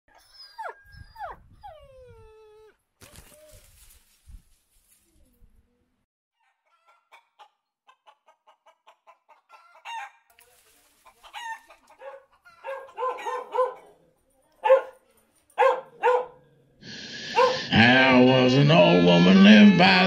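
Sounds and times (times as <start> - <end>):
chicken clucking: 6.4 - 14.0.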